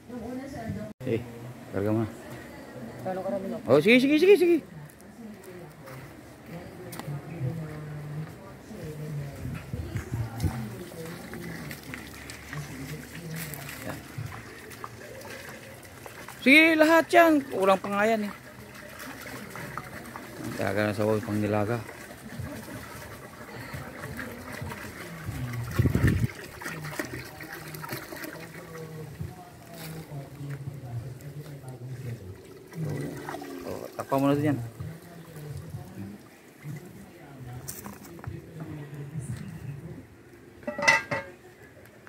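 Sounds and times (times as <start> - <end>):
water pouring into metal pot: 10.7 - 29.0, 32.0 - 35.9
metal pot lid clanking: 40.6 - 41.4.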